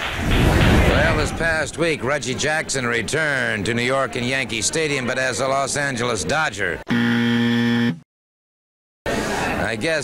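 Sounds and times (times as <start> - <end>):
loud buzzing tone: 6.9 - 8.0.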